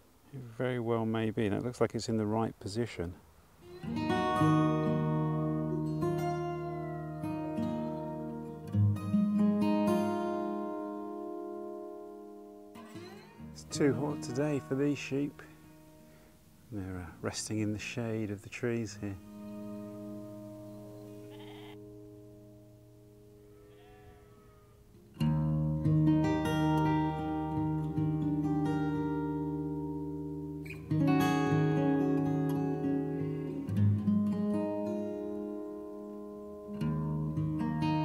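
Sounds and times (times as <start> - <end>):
acoustic guitar music: 3.6 - 38.0
sheep bleating: 12.9 - 15.5, 21.0 - 21.9, 23.4 - 24.8, 32.6 - 33.8.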